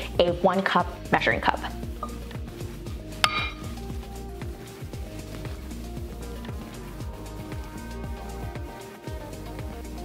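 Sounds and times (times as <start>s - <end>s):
background music with beat: 0.0s - 10.0s
metal cup clinking on glass bowl: 3.2s - 3.6s.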